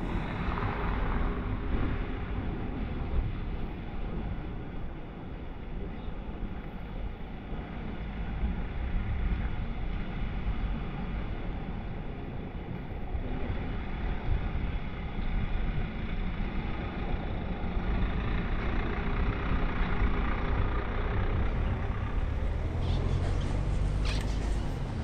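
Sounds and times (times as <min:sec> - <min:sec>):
deep vehicle rumble: 0:00.0 - 0:25.0
car driving on wet paving: 0:15.9 - 0:25.0.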